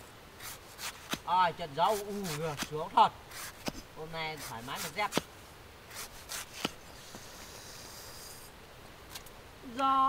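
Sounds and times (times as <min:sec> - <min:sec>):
soft rustling hiss: 0:00.0 - 0:10.0
knife slicing banana blossom: 0:00.4 - 0:05.3, 0:05.9 - 0:06.8.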